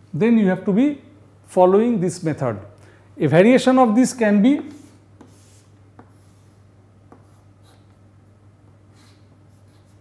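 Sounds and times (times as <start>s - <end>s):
chalk taps: 4.5s - 8.0s
chalk scratching on chalkboard: 4.6s - 8.0s, 8.9s - 10.0s.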